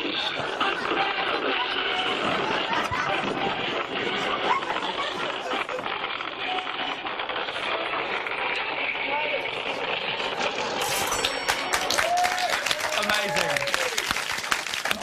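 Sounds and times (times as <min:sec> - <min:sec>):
people laughing: 0:00.0 - 0:07.0
people clapping: 0:11.2 - 0:15.0.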